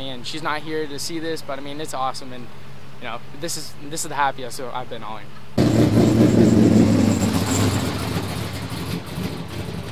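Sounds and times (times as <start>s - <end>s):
racing car engine running: 5.6s - 9.9s.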